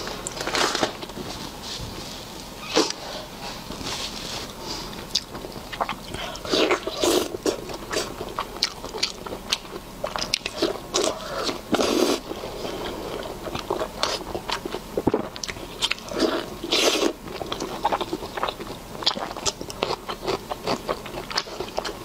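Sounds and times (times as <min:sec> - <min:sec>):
bites and wet chewing: 0:04.4 - 0:22.0.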